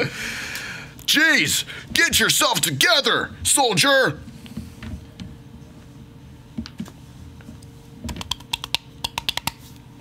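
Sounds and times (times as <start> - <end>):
computer keyboard clicks: 8.1 - 9.6.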